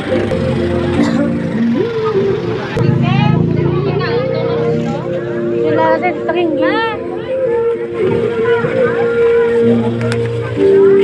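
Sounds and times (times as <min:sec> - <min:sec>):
melody of long held notes: 0:00.0 - 0:11.0.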